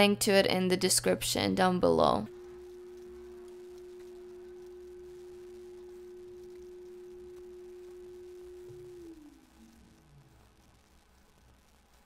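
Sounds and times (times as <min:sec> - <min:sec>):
fainter lower tone: 0:00.0 - 0:11.7
steady pure electronic tone: 0:00.0 - 0:12.0.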